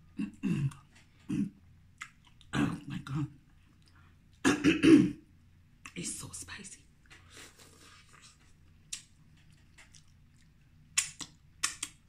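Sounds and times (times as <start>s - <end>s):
woman clearing her throat: 0.2s - 1.6s, 4.4s - 5.2s
woman coughing: 4.4s - 5.2s.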